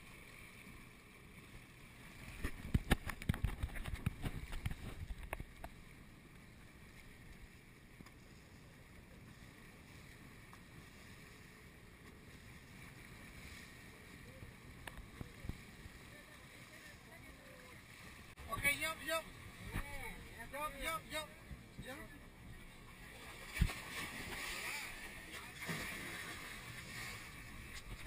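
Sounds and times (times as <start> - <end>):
small boat at sea: 0.0 - 28.0
water splashing: 21.9 - 28.0.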